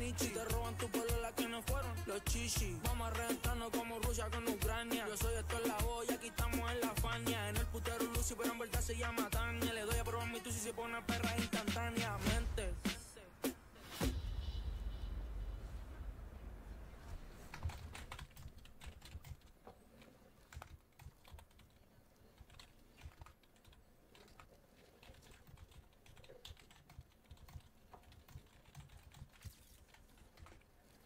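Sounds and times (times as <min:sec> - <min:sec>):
low rumble: 0:14.1 - 0:17.2
typing on computer keyboard: 0:17.5 - 0:31.0.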